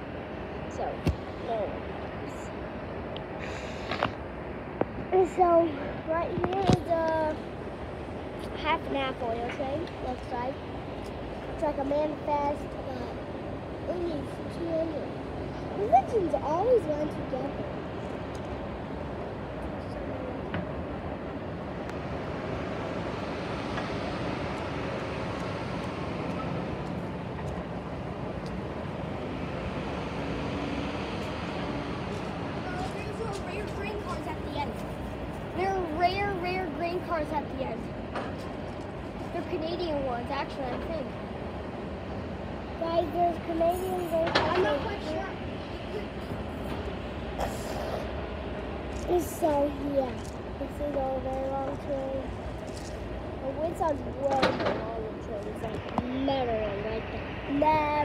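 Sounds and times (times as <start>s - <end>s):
distant freight train rumble: 0.0s - 58.0s.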